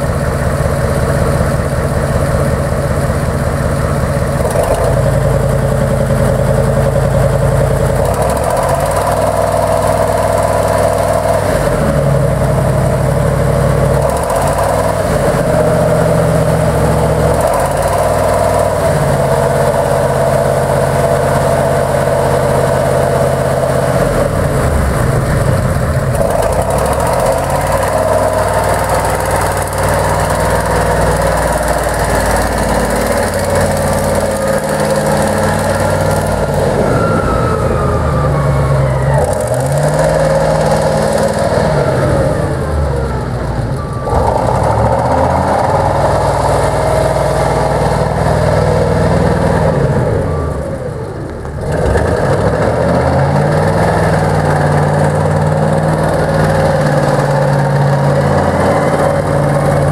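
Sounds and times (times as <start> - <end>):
diesel loader engine revving: 0.0 - 59.9.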